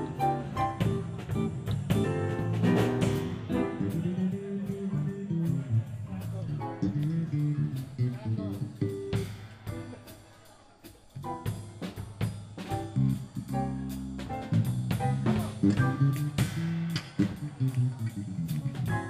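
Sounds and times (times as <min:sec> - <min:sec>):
electric bass: 0:00.0 - 0:09.3, 0:12.8 - 0:19.0
guitar: 0:00.0 - 0:10.2, 0:11.2 - 0:19.0
drum kit: 0:00.0 - 0:19.0.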